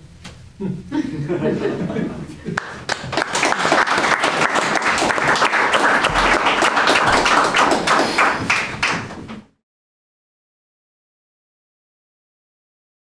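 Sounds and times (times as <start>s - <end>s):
audience applause: 2.6s - 9.3s.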